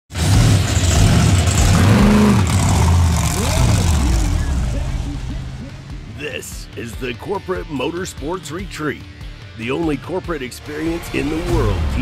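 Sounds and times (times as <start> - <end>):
monster truck engine running: 0.1 - 6.2.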